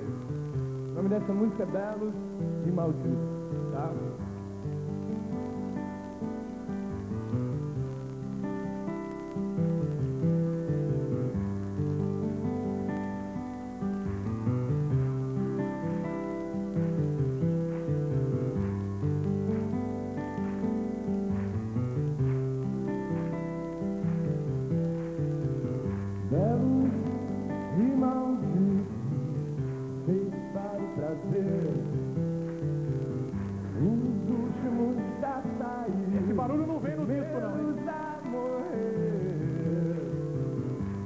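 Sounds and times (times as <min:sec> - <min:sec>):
acoustic guitar strumming: 0:00.0 - 0:41.0
man singing lead vocal: 0:01.0 - 0:04.1, 0:26.3 - 0:32.2, 0:33.7 - 0:40.6.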